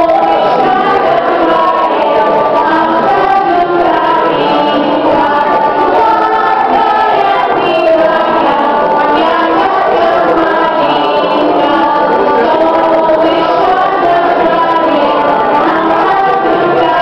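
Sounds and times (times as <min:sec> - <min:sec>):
children singing: 0:00.0 - 0:17.0.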